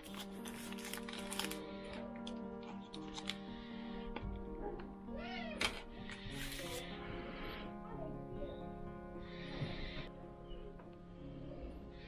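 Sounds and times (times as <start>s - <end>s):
paper packet crinkling: 0.0s - 3.6s, 6.1s - 6.8s
soft background music: 0.0s - 12.0s.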